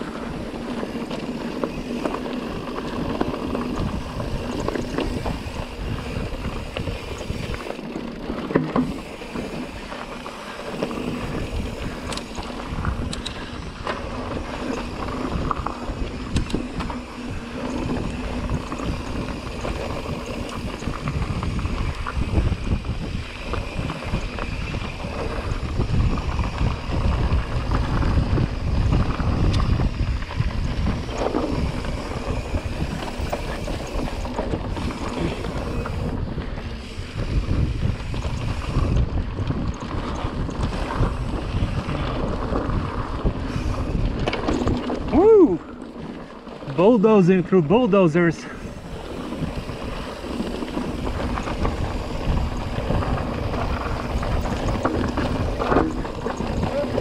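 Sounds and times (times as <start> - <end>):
stones clicking under tyres: 0.0 - 47.0, 48.5 - 57.0
wind buffeting microphone: 0.0 - 47.2, 47.8 - 57.0
mountain bike rumbling and rattling: 0.0 - 57.0.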